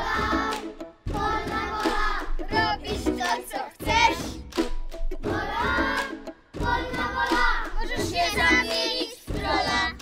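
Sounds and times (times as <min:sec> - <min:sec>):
children singing: 0:00.0 - 0:04.4, 0:05.2 - 0:10.0.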